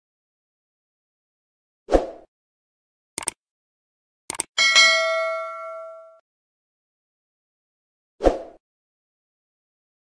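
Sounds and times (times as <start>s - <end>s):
double mouse click: 4.3s - 4.5s
notification bell ding: 4.6s - 6.2s.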